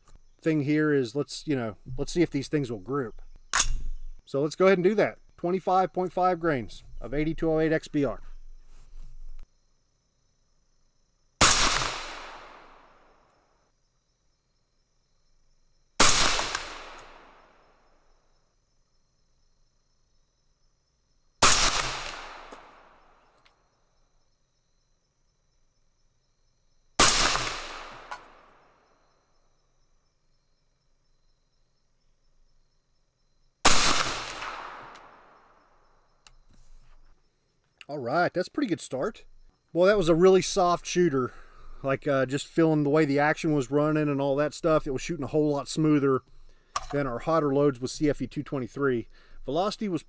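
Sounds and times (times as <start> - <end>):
rifle shots with echo: 11.4 - 13.0, 16.0 - 17.5, 21.4 - 23.0, 27.0 - 28.6, 33.6 - 35.4.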